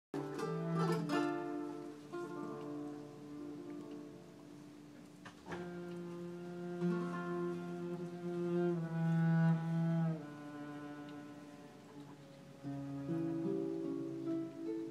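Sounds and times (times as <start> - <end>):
guitar strummed chords: 0.2 - 5.0
cello bowed notes: 0.2 - 14.9.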